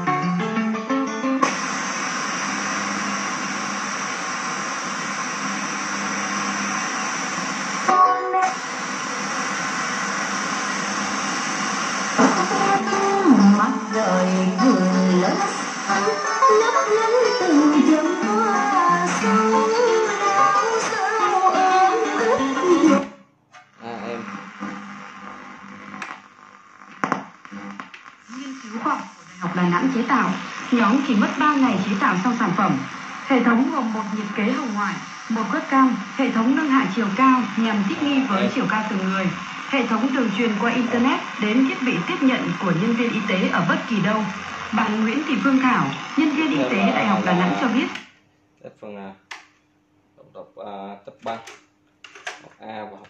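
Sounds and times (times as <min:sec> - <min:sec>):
music from stereo: 0:00.0 - 0:23.3
music from radio: 0:00.0 - 0:48.1
radio static hiss: 0:01.4 - 0:23.0, 0:23.7 - 0:48.1
radio station breaking through: 0:01.5 - 0:23.0, 0:27.4 - 0:48.0
faint broadcast voice: 0:23.8 - 0:24.4, 0:37.4 - 0:44.1, 0:44.8 - 0:48.0.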